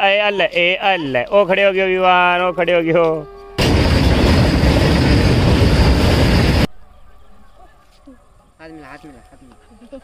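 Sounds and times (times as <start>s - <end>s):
freight train rolling past: 3.6s - 6.7s.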